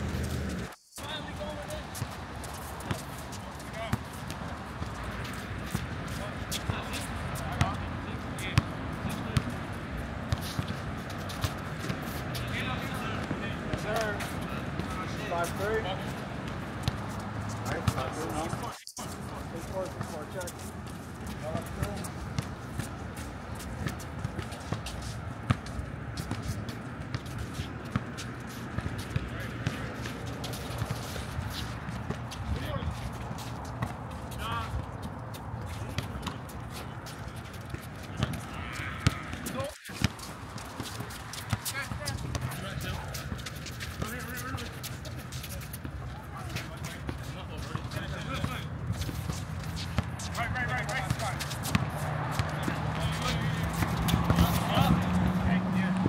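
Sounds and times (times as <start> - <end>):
players' voices and shouts: 1.0 - 2.1, 12.1 - 22.2, 32.5 - 33.1, 34.1 - 35.0, 38.1 - 56.0
basketball bouncing on court: 35.8 - 36.5, 37.1 - 44.3, 50.0 - 54.6.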